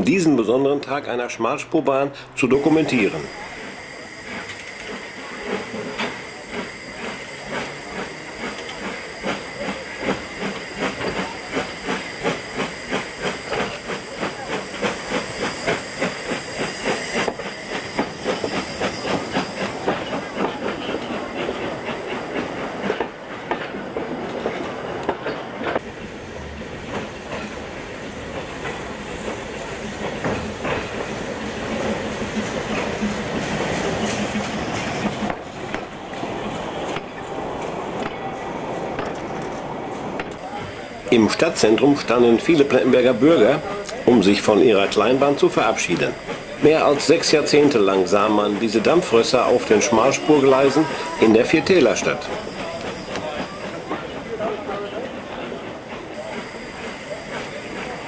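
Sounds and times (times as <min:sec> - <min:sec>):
steam locomotive exhaust beats: 0:02.1 - 0:58.0
hiss of steam: 0:02.2 - 0:58.0.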